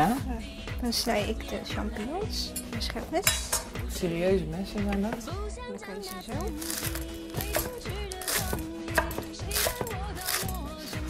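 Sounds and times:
background music: 0:00.0 - 0:11.0
knife chopping on wooden board: 0:06.6 - 0:10.5.

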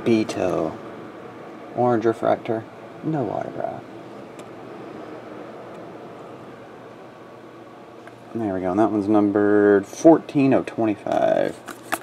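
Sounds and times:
low room noise hiss: 0:00.0 - 0:12.0.

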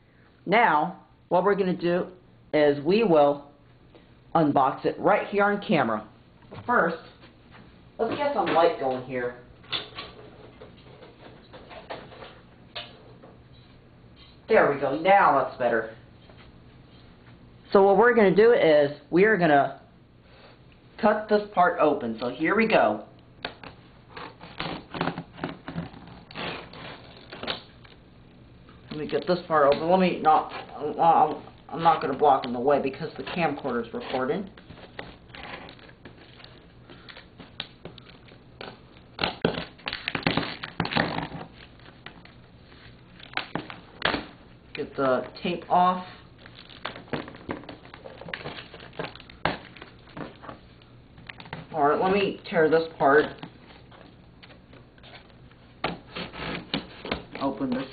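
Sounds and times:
packing tape peeling off cardboard: 0:23.6 - 0:28.0, 0:34.6 - 0:44.3.

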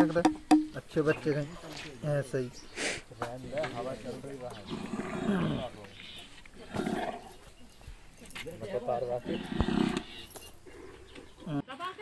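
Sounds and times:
bamboo noisemaker growling calls: 0:02.7 - 0:07.5, 0:09.0 - 0:11.6.

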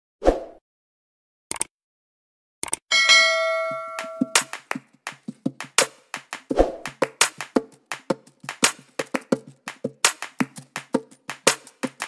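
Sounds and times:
bell chime: 0:02.9 - 0:04.5
music with clicking percussive beat: 0:03.0 - 0:12.0.

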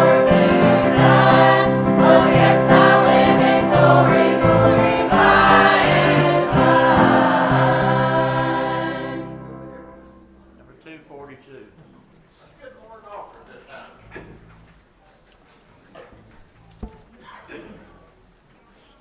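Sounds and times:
church choir singing a hymn: 0:00.0 - 0:10.2.

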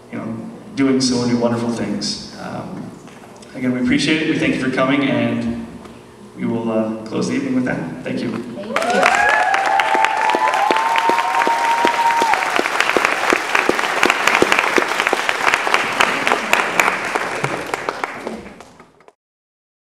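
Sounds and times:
drawn-out cheers: 0:08.7 - 0:12.7
audience applauding: 0:08.7 - 0:19.2.

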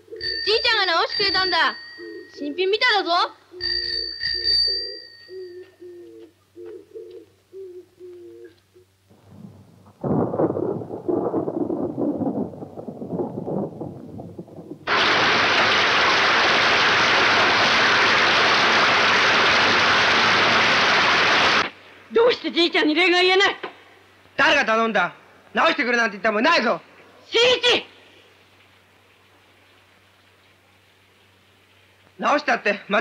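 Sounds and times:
bicycle bell ringing: 0:00.2 - 0:02.8, 0:03.6 - 0:05.6
heavy rain pouring off a roof: 0:14.8 - 0:21.7.

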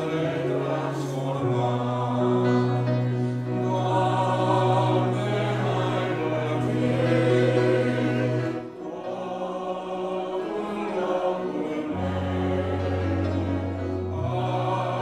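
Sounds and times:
congregation singing a hymn: 0:00.0 - 0:15.0.

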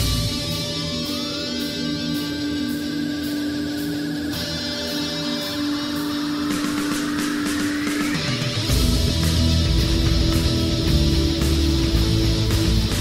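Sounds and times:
drums and bass: 0:00.0 - 0:13.0
held electric guitar notes: 0:00.0 - 0:13.0
rising pitch sweep: 0:00.0 - 0:13.0.

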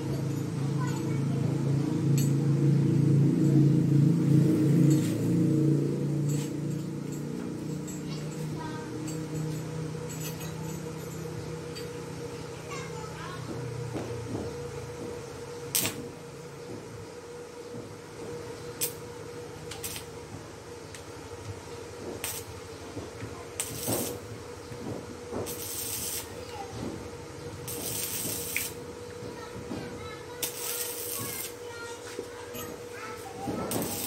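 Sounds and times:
arc welder crackling and hissing: 0:00.0 - 0:34.0.

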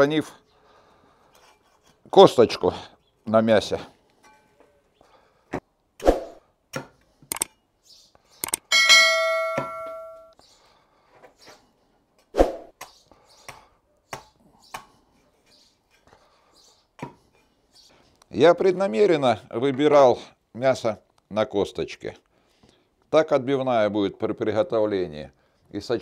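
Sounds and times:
blade ringing metallic tone: 0:08.7 - 0:10.3.

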